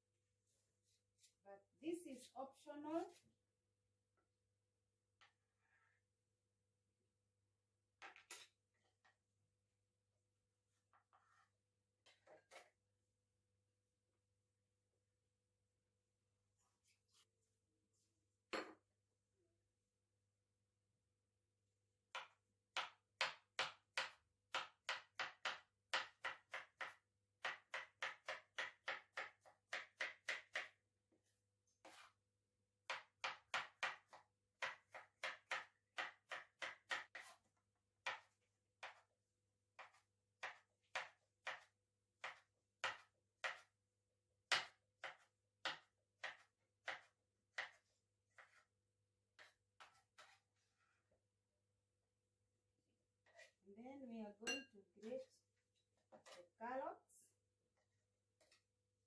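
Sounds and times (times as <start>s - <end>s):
knife cutting tomato on board: 22.1s - 30.8s, 31.8s - 32.2s, 32.8s - 39.1s, 39.7s - 43.8s, 44.4s - 50.8s, 53.2s - 53.6s, 56.0s - 56.6s, 57.8s - 58.8s.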